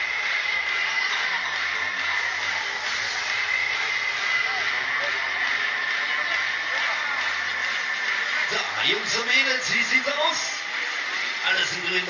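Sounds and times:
faint crowd voices: 0.0 - 12.0
fairground ride mechanical rushing: 0.0 - 12.0
operator voice over loudspeakers: 8.3 - 10.7, 11.4 - 12.0.

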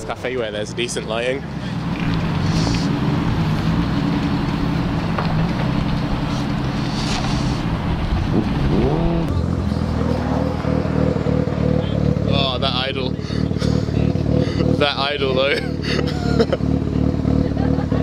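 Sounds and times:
car engines idling: 0.0 - 18.0
choppy pulsing engine idle: 9.3 - 18.0.

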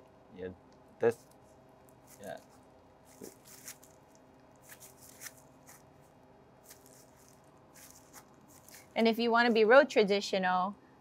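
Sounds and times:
low room hum: 0.0 - 11.0
plastic gloves crinkling: 1.2 - 9.6.

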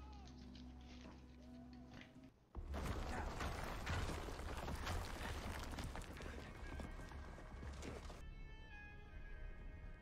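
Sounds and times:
horses' hoofbeats clatter: 2.6 - 8.2
background music: 6.3 - 10.0.

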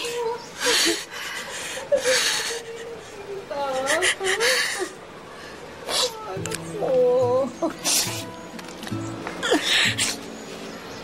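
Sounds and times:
woman sobbing: 0.0 - 5.2, 7.2 - 8.4, 9.4 - 10.2
soft music with held notes: 6.4 - 11.0
sharp sniff: 7.8 - 8.4.

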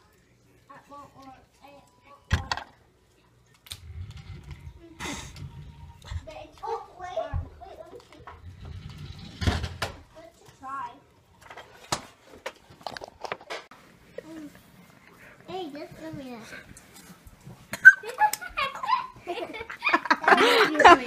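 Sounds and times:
children talking indistinctly: 3.8 - 11.2.

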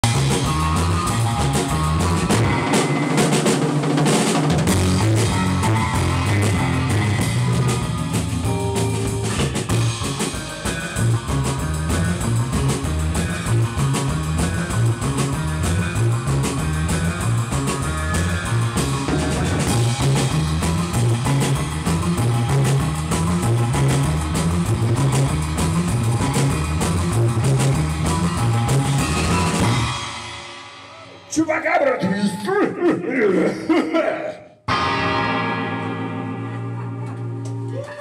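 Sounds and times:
electric guitars: 0.0 - 31.3, 34.7 - 38.0
bass guitar: 0.0 - 31.4, 33.0 - 38.0
driving drum kit: 0.0 - 32.1, 34.7 - 37.7.

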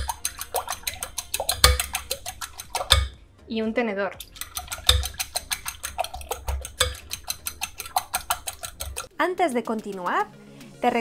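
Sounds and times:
fork clicking against glass bowl: 0.0 - 3.2, 4.2 - 10.2.

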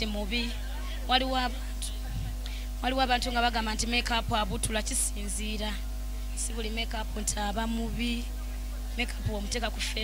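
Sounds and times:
woman talking into microphone: 0.0 - 10.0.

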